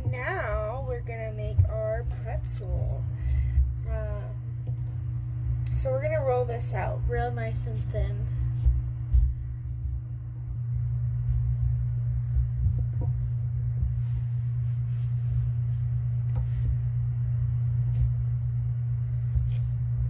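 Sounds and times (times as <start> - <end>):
hands rolling clay on paper: 0.0 - 5.1, 6.3 - 20.0
steady low hum: 0.0 - 20.0.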